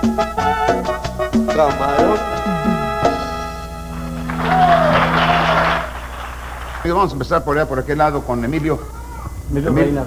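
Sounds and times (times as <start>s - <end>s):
man speaking: 1.5s - 3.1s, 6.8s - 10.0s
band sustained chord: 1.6s - 6.1s
audience applause: 4.0s - 7.2s
held falling cry: 4.2s - 6.0s.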